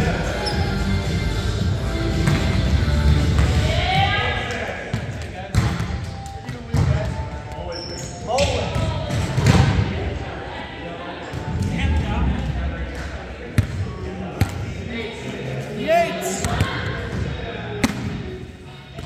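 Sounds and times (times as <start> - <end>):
players chatting and calling out: 2.9 - 19.0.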